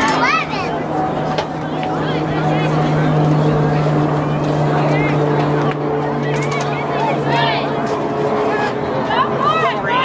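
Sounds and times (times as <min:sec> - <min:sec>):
distant voices calling out: 0:00.0 - 0:10.0
low mechanical hum: 0:00.0 - 0:10.0.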